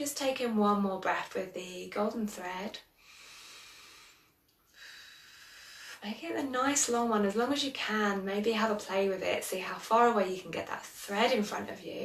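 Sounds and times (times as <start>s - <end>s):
woman breathing in through nose: 2.9s - 6.0s.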